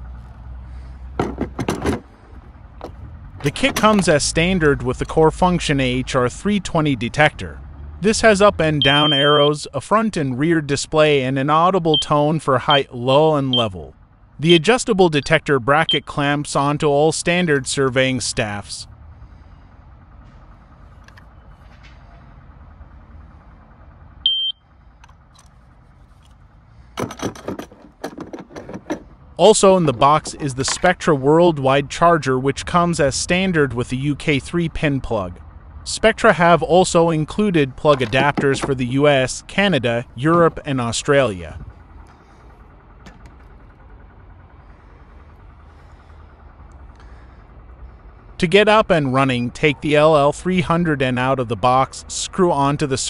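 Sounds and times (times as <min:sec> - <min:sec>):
low mechanical hum: 0:00.0 - 0:53.0
device handling clicks and knocks: 0:01.2 - 0:04.1, 0:27.0 - 0:29.1, 0:37.9 - 0:38.8
high electronic beep: 0:08.8 - 0:09.6, 0:15.9 - 0:16.1, 0:24.3 - 0:24.6.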